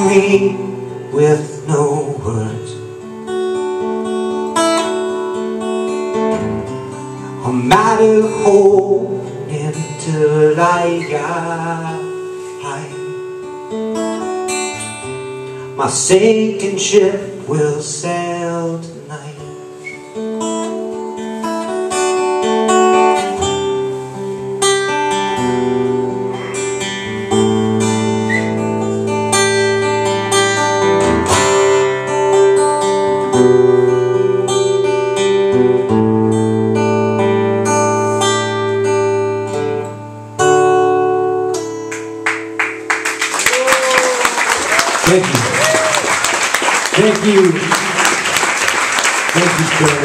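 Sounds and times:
acoustic guitar strumming: 0:00.0 - 0:43.4
audience applause: 0:42.2 - 0:50.0.

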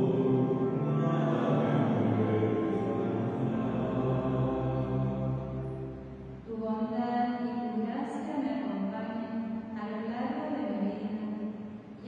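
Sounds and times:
chant-like church music: 0:00.0 - 0:07.4.

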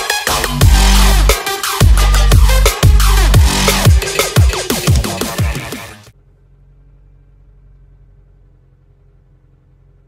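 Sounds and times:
low steady car cabin hum: 0:06.1 - 0:10.0.

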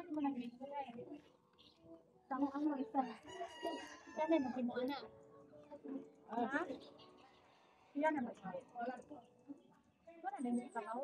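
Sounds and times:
rooster crowing: 0:03.1 - 0:04.6.

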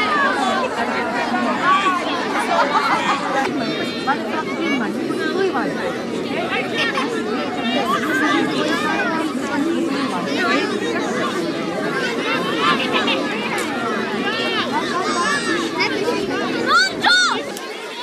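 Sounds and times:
children chattering and calling out: 0:00.0 - 0:18.0.

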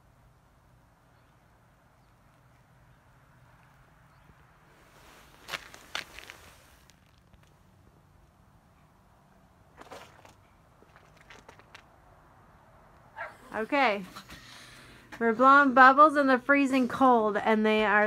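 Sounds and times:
sharp crunches and clicks: 0:05.4 - 0:07.6, 0:09.8 - 0:12.0.

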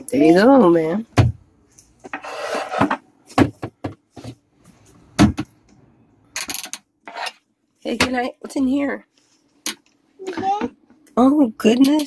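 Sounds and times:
toy scraping rub: 0:02.1 - 0:02.8.

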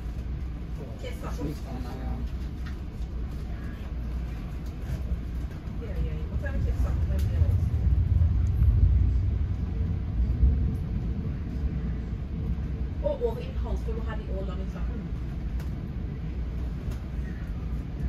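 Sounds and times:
train wheels rumbling: 0:00.0 - 0:18.0.

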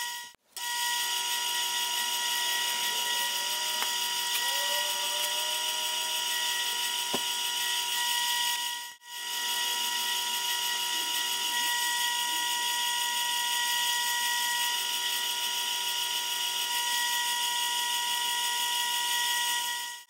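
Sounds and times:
metal lathe whining: 0:00.0 - 0:20.0.

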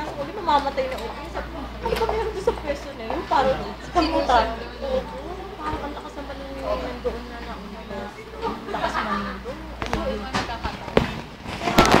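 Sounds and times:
loud crackling knocks: 0:09.8 - 0:12.0.

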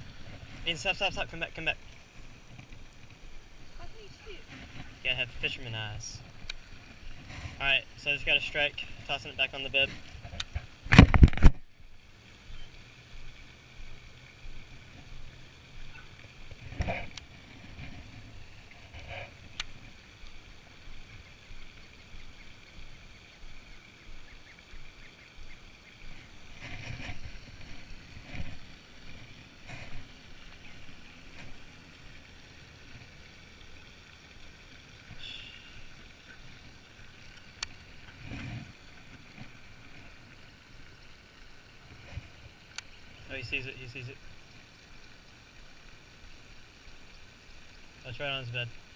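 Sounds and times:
background hiss: 0:00.0 - 0:48.9.

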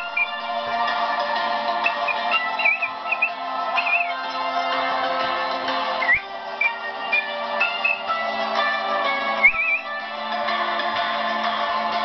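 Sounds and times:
high warbling whistle-like notes: 0:00.0 - 0:00.6, 0:01.8 - 0:04.2, 0:06.0 - 0:08.1, 0:09.4 - 0:10.0
instrumental karaoke backing track: 0:00.0 - 0:12.0.

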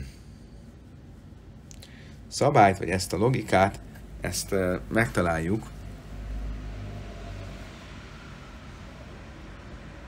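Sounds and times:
faint hiss: 0:00.0 - 0:10.0
steady low hum: 0:00.0 - 0:10.0.

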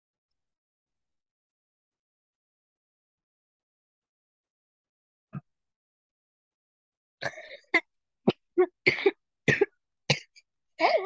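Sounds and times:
person coughing: 0:07.2 - 0:11.0.

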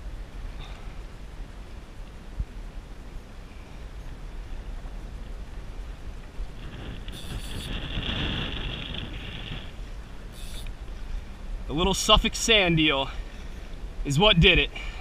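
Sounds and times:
wind buffeting microphone: 0:00.0 - 0:14.9.

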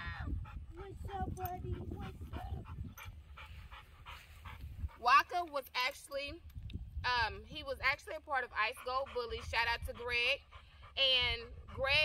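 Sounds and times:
dog panting: 0:00.0 - 0:05.4, 0:07.9 - 0:12.0.

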